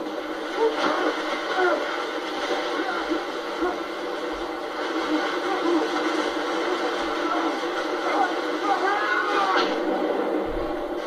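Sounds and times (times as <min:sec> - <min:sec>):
people yelling: 0:00.3 - 0:09.9.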